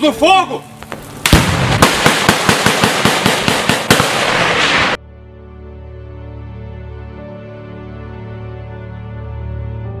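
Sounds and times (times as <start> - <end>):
loud sharp bangs: 0.9 - 5.0.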